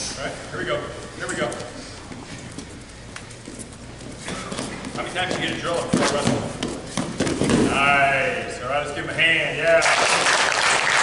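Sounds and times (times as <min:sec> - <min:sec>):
murmur of large room: 0:00.0 - 0:11.0.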